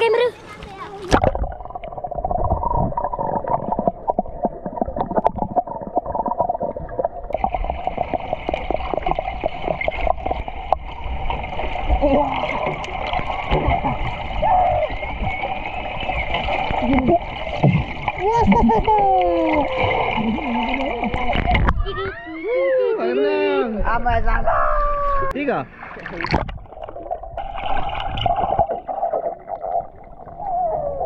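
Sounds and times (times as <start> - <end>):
muffled underwater gurgling: 1.1 - 22.0, 26.2 - 31.0
underwater clicks and knocks: 21.0 - 21.9, 26.2 - 28.8.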